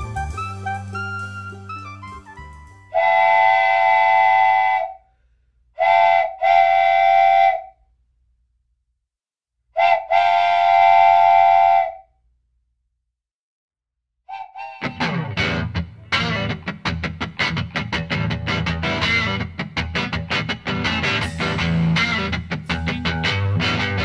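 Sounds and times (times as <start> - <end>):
music: 0.0 - 3.1, 14.7 - 24.0
whistle blasts: 0.0 - 5.1, 5.8 - 7.8, 9.8 - 12.2, 14.3 - 15.1.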